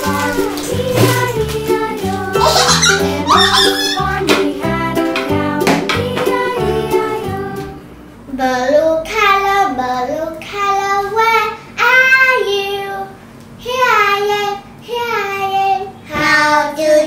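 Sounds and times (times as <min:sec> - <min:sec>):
child singing: 0:00.0 - 0:17.0.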